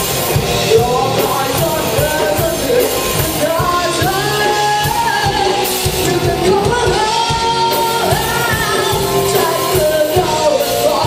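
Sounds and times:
live rock band playing: 0.0s - 11.0s
person singing lead vocal: 0.0s - 11.0s.

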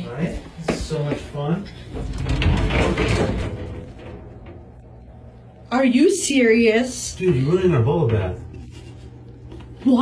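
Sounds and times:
shower door sliding open: 1.8s - 5.1s.

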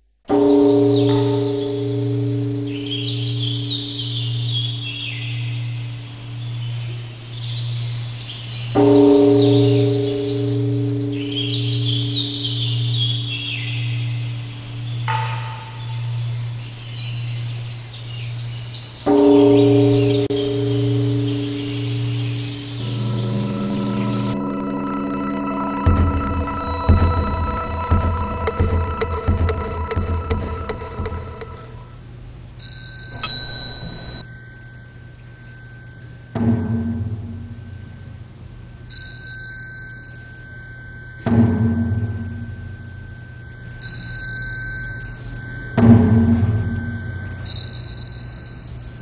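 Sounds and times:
birds chirping: 0.3s - 49.0s
large bell ringing: 0.3s - 49.0s
low pulsing hum: 0.6s - 38.9s, 39.9s - 49.0s.

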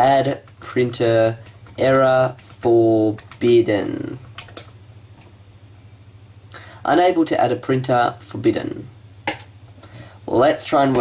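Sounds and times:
steady low hum: 0.0s - 11.0s
computer keyboard keystrokes: 0.2s - 4.8s.

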